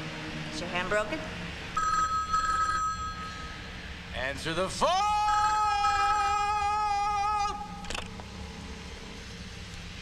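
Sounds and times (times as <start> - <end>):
man singing high held note: 4.8 - 7.8.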